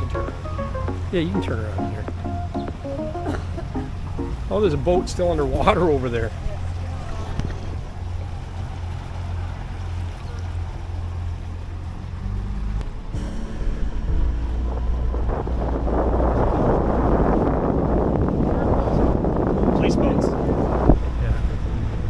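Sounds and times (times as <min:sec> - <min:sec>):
wind on microphone: 0:00.0 - 0:10.2, 0:12.7 - 0:22.0
motorboat engine humming: 0:00.0 - 0:22.0
water rushing: 0:00.0 - 0:22.0.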